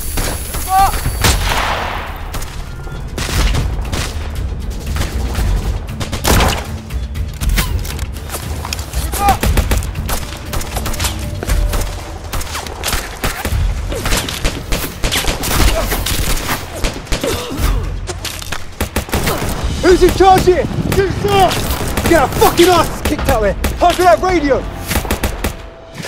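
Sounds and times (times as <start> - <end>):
faint shouting: 0.7 - 1.0.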